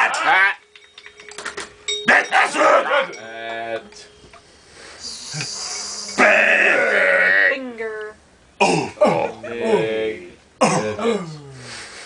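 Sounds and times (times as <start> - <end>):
hissing breath: 4.4 - 6.3, 11.6 - 12.0
rough held vocal tone: 5.0 - 7.6.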